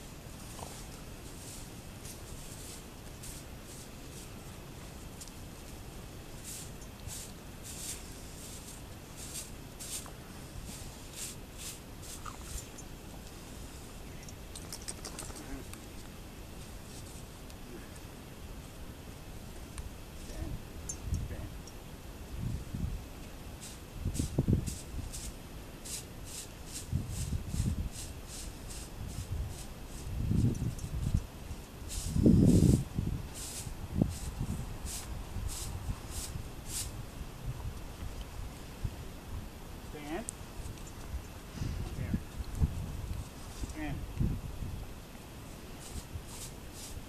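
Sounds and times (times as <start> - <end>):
broom bristles swishing: 0.4 - 4.5, 6.4 - 12.8, 23.6 - 30.5, 31.7 - 37.0, 45.7 - 47.0.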